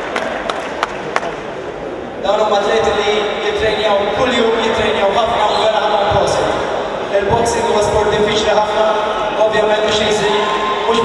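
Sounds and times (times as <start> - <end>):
man announcing over loudspeaker: 2.2 - 11.0.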